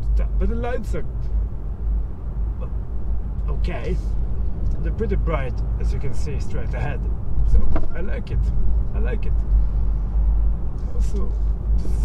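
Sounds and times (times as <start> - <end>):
road and tyre rumble in car: 0.0 - 12.0.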